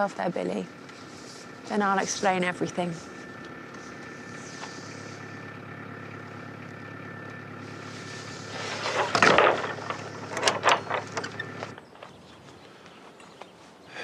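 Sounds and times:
steady hum: 0.0s - 12.9s
wooden barn door scraping: 8.4s - 11.8s
door and latch clattering: 9.1s - 11.5s.

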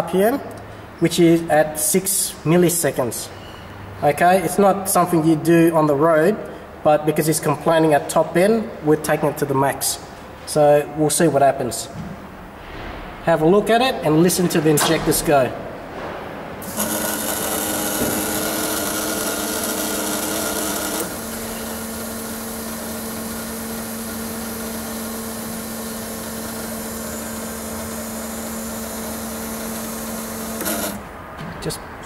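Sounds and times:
fuel injectors buzzing: 16.6s - 31.2s.

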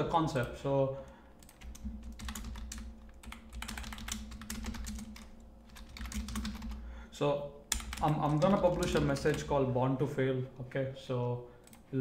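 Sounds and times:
typing on computer keyboard: 1.4s - 6.8s, 7.7s - 9.5s.

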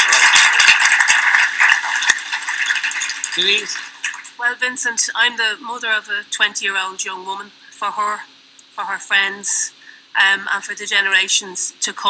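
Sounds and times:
audience applauding: 0.0s - 4.3s.

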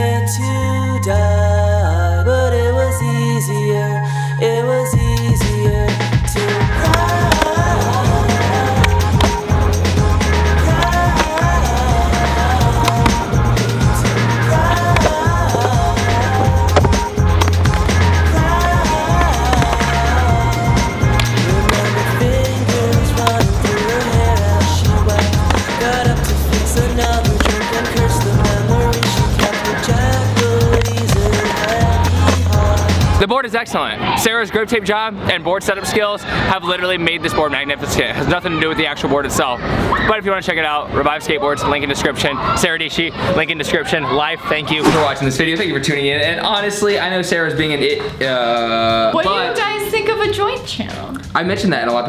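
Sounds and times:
music with stepping bass line: 5.0s - 33.2s.

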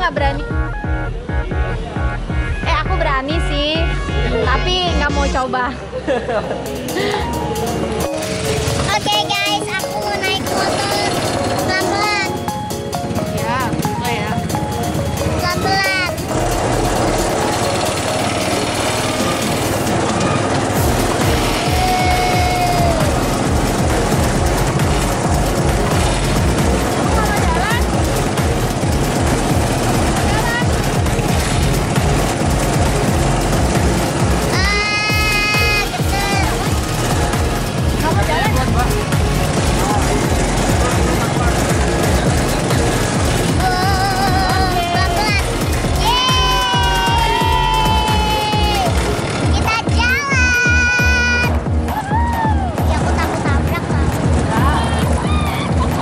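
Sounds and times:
music: 0.0s - 56.0s
crowd voices: 0.7s - 56.0s
rapid low throbbing: 6.3s - 56.0s.

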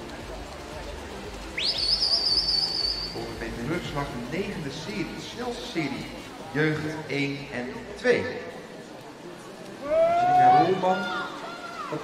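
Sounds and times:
murmur of pool hall: 0.0s - 12.0s.

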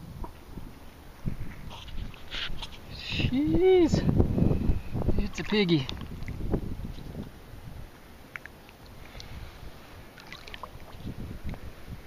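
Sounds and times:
low rumbling on microphone: 0.0s - 8.0s, 8.9s - 12.0s
water sloshing and splashing: 1.5s - 3.0s, 5.1s - 7.4s, 8.0s - 11.7s.

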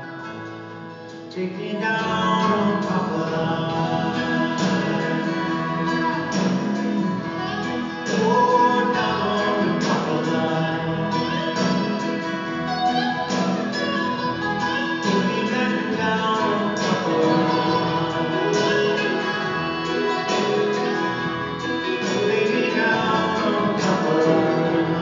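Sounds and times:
acoustic guitar: 0.0s - 25.0s
people singing: 1.6s - 13.8s, 14.5s - 25.0s.

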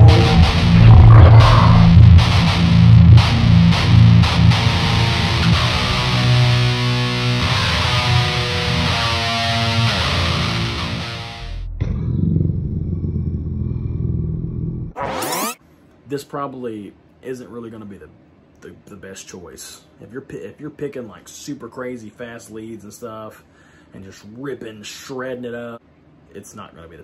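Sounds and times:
distorted electric guitar riff: 0.0s - 11.7s.

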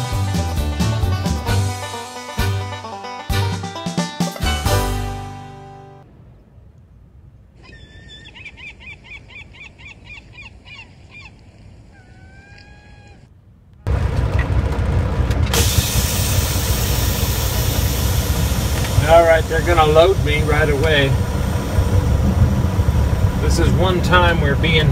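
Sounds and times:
birds calling faintly: 6.3s - 13.3s
idling engine low rumble: 13.8s - 24.9s.

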